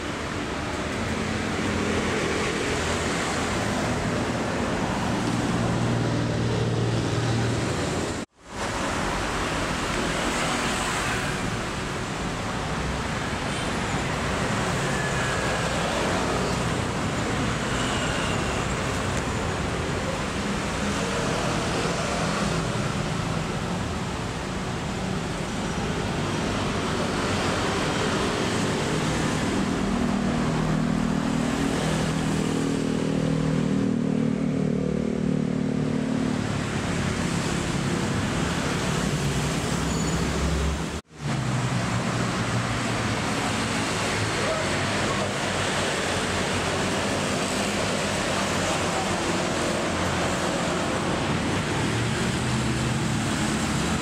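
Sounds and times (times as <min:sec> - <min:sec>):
road traffic noise: 0:00.0 - 0:54.0.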